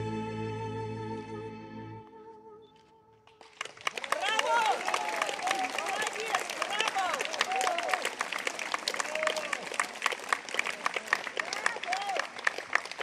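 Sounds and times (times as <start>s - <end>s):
audience applauding: 3.4s - 13.0s.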